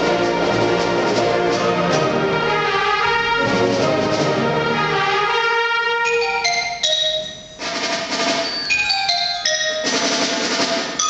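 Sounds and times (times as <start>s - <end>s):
concert band playing: 0.0s - 11.0s
high held notes from mallets and winds: 5.1s - 11.0s
drum and cymbal wash: 6.2s - 11.0s.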